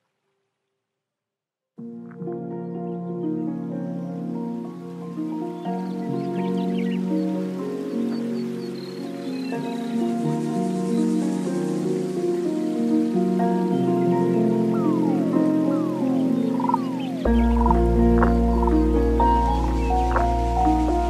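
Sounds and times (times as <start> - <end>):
deep bass: 17.3 - 21.0.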